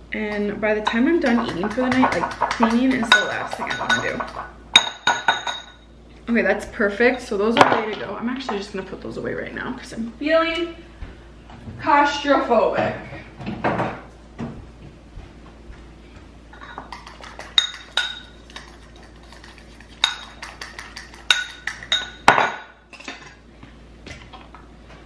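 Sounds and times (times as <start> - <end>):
fork clinking against ceramic bowl: 16.6 - 18.4, 20.0 - 22.2.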